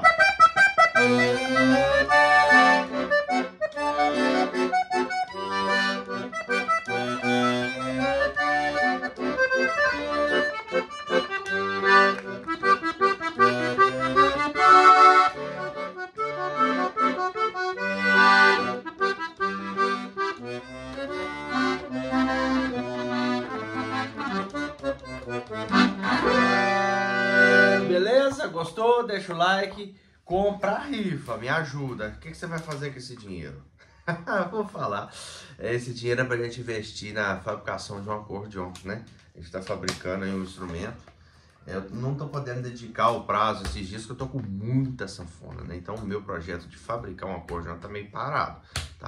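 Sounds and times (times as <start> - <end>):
accordion melody: 0.0 - 29.3
accordion bass notes and chords: 0.0 - 29.4, 35.3 - 49.0.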